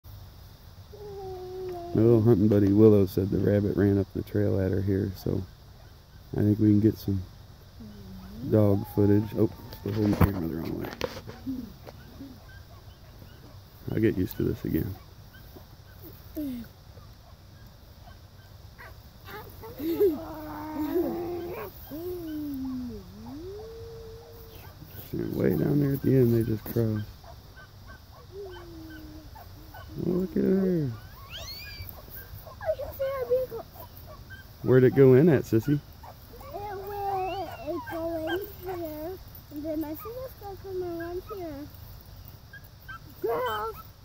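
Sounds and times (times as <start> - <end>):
dog baying: 8.1 - 10.4, 18.8 - 35.2, 36.0 - 41.6, 42.6 - 43.9.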